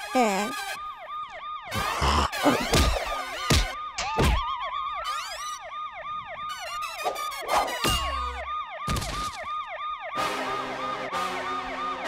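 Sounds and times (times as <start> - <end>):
cartoon police siren wail: 0.0 - 12.0.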